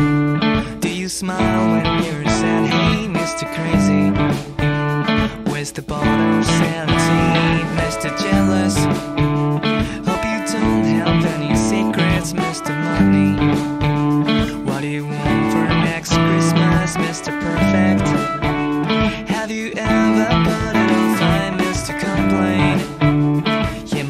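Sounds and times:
electric guitars playing rock riff: 0.0 - 24.0
steady drum beat: 0.0 - 24.0.

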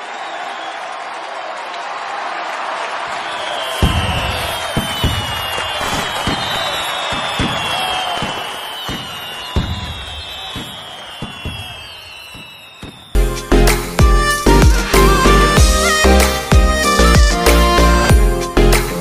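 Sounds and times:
fireworks whistling: 3.3 - 13.2
fireworks crackling and banging: 3.7 - 13.2
music with heavy beat: 13.2 - 19.0.

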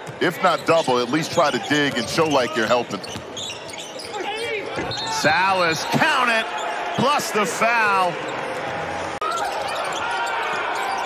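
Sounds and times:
sneakers squeaking: 0.0 - 7.2, 8.1 - 11.0
arena crowd noise: 0.0 - 11.0
referee's whistle: 4.8 - 5.5.

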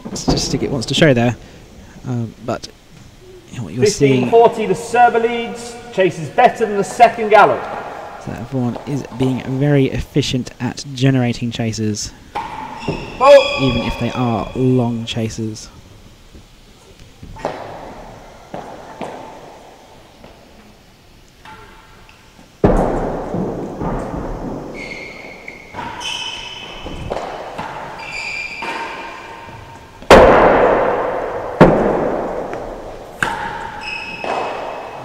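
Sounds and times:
racquet striking ball: 7.4 - 9.3, 12.3 - 14.2, 17.4 - 19.6, 22.6 - 35.0
ball thudding off walls: 30.1 - 33.6.

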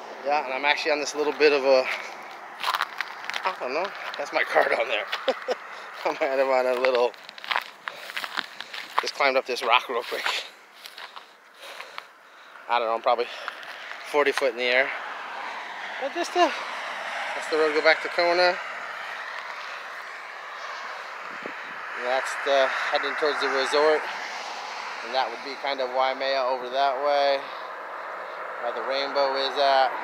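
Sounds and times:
distant highway traffic: 0.0 - 30.0
footsteps on loose rock: 1.9 - 4.2, 6.0 - 12.1.

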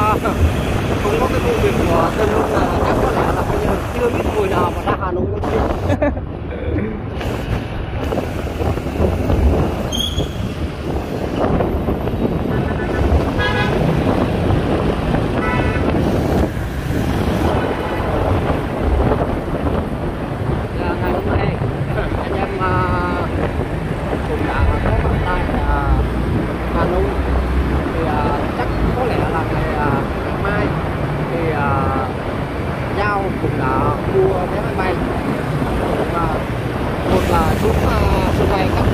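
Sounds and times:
wind on microphone: 0.0 - 38.9.

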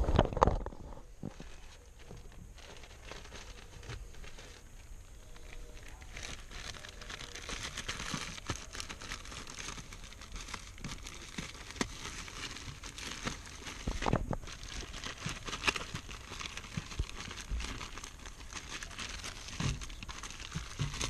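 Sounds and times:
plastic wrapping crinkling: 0.0 - 21.0.

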